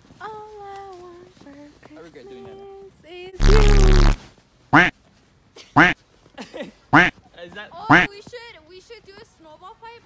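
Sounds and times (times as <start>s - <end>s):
loud sound: 3.4s - 4.2s.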